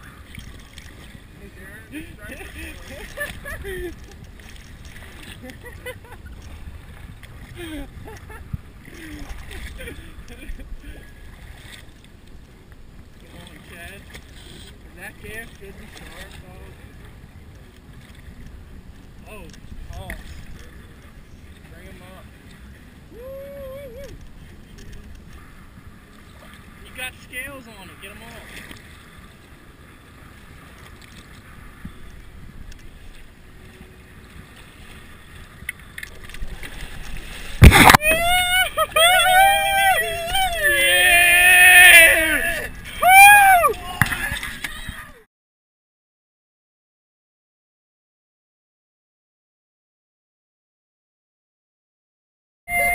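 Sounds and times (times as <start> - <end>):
wind on microphone: 0.0 - 11.7
water slapping boat hull: 0.0 - 23.0, 24.0 - 45.2
wind: 0.0 - 45.3, 52.7 - 52.9
loud splash: 36.6 - 38.7
man yelling: 38.0 - 44.0.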